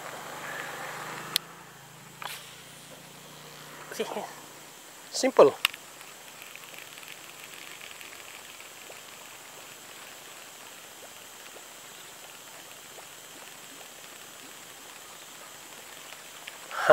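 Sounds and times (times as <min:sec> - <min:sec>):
outdoor waterside hiss: 0:00.0 - 0:16.9
soft ticks: 0:05.6 - 0:16.7.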